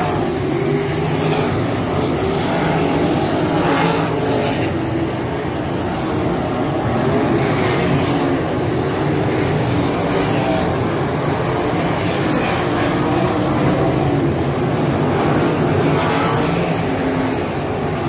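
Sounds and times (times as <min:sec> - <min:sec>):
racing car engines passing: 0:00.0 - 0:18.0.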